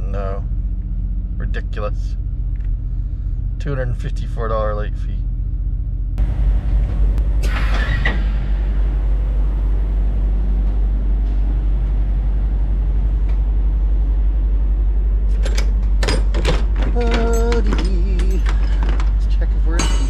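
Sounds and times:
diesel truck engine idling: 0.0 - 16.0.

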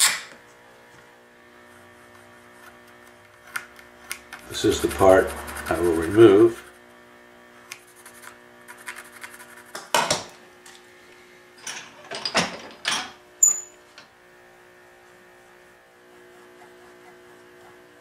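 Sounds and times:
steady low hum: 0.4 - 9.7
pencil scratching on wood: 4.5 - 6.7, 7.8 - 9.8, 16.2 - 18.0
metallic clink with ring: 13.4 - 13.8.

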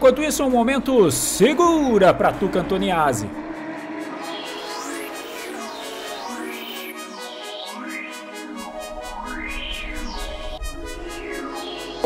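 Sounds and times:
bass line: 0.0 - 3.6
synthesizer sweeps: 0.0 - 12.0
pulsing electronic beat: 0.1 - 12.0.

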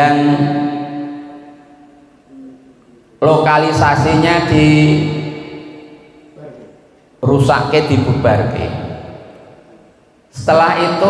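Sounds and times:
man's drawn-out voice through microphone: 0.0 - 1.2, 2.3 - 5.6, 6.4 - 9.0, 10.3 - 11.0.

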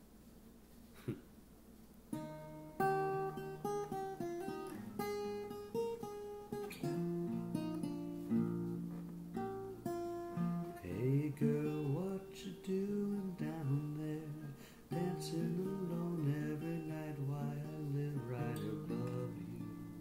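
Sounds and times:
acoustic guitar strumming: 2.1 - 20.0.

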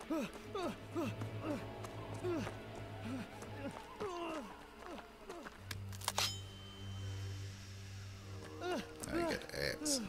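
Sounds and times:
steady low drone: 0.0 - 9.9.

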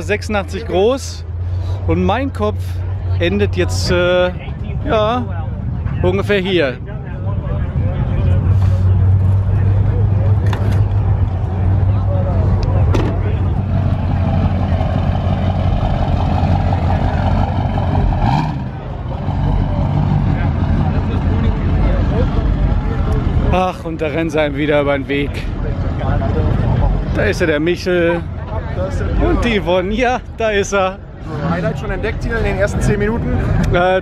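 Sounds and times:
pickup truck engine droning: 6.8 - 27.6.

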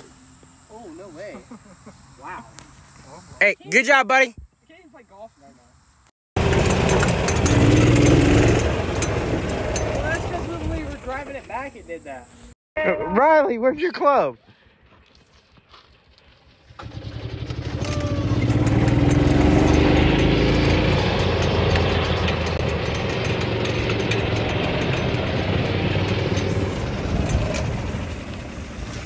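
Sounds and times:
golf cart engine: 6.4 - 12.1, 16.4 - 29.0
tyres on gravel: 14.4 - 29.0.

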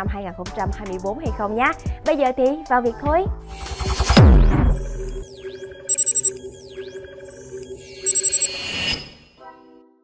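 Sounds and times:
stuttering electronic glitch burst: 3.5 - 8.6
steady synth tones: 3.5 - 9.2.

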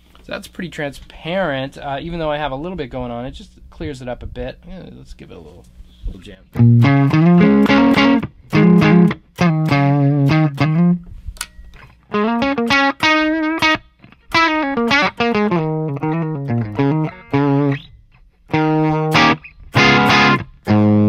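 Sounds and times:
electric guitar chords: 6.5 - 11.0, 12.1 - 17.9, 18.5 - 21.0.

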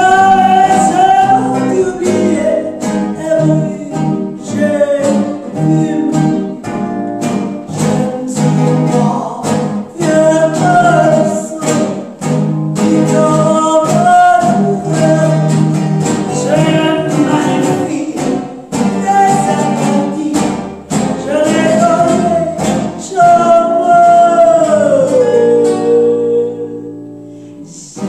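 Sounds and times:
woman singing: 0.0 - 6.4, 7.7 - 12.0, 16.3 - 28.0
electric guitar: 0.0 - 28.0
strummed acoustic guitar: 0.0 - 28.0.

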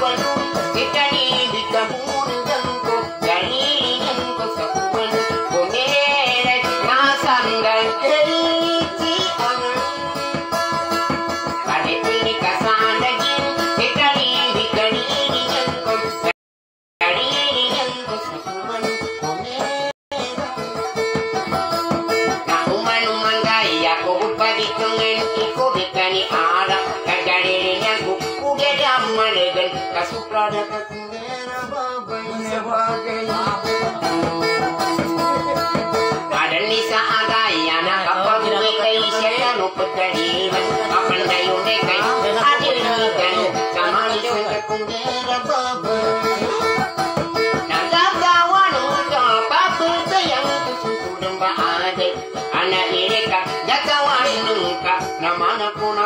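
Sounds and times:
acoustic guitar strumming: 0.0 - 16.3, 17.0 - 56.0
person singing: 0.0 - 16.3, 17.0 - 56.0.

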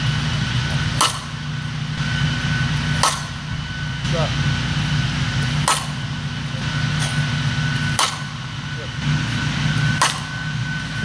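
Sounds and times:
steady low hum: 0.0 - 11.0
bat cracking ball: 0.8 - 1.6, 2.9 - 3.5, 5.4 - 6.2, 6.9 - 8.5, 9.8 - 10.5.

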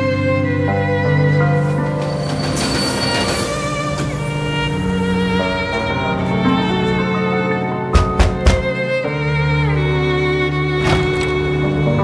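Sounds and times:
soft string music: 0.0 - 12.0
train brakes squealing: 1.6 - 4.4.

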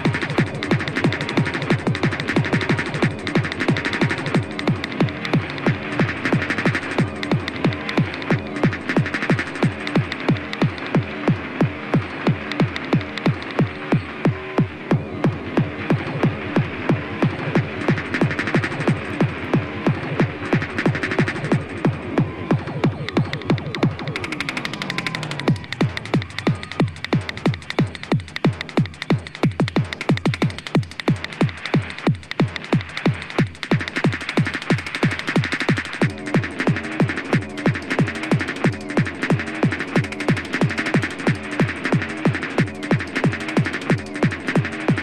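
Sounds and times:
repeating synth riff: 0.0 - 45.0.

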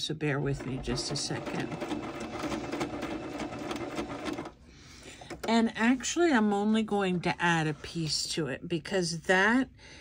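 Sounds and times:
sewing machine running: 0.4 - 4.6.

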